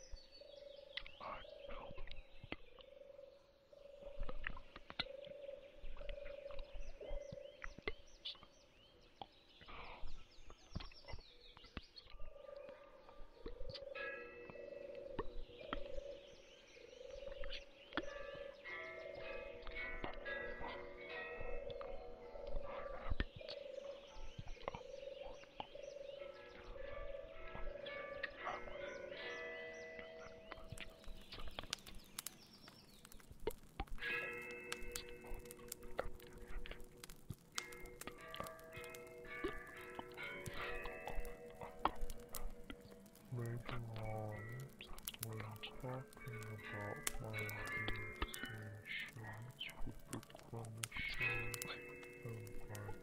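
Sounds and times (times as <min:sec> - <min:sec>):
croaking animal calls: 0:16.9 - 0:31.9, 0:33.4 - 0:53.0
scattered clicks: 0:30.5 - 0:53.0.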